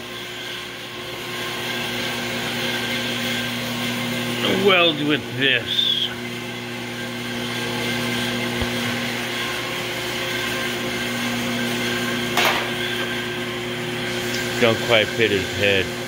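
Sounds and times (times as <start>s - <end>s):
machine electrical hum: 0.0s - 16.0s.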